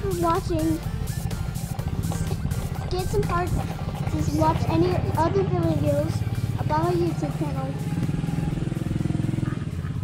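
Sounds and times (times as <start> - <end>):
engine running with pulsing hum: 0.0 - 10.0.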